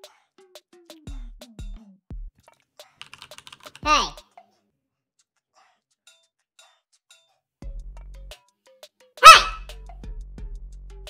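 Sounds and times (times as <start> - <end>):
high-pitched sped-up shout: 3.8 - 4.2, 9.2 - 9.6.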